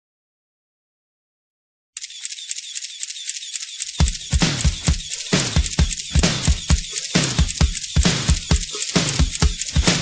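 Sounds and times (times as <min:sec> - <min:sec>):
hi-hat ticking: 0:02.0 - 0:10.0
full beat with deep kick drum: 0:04.0 - 0:10.0.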